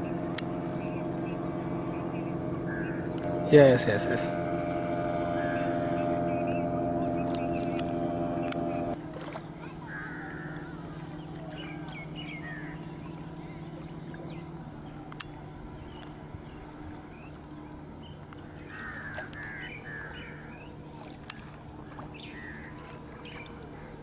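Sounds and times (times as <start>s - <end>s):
motorboat engine running: 0.0s - 24.0s.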